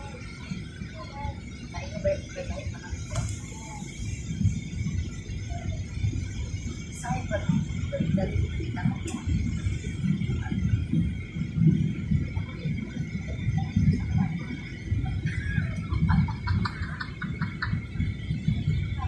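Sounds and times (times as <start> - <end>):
airliner engine rumble: 0.0 - 19.0.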